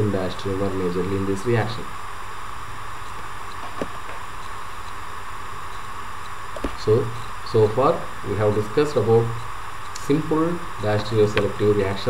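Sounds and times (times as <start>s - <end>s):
low hum: 0.0s - 12.0s
recording hiss: 0.0s - 12.0s.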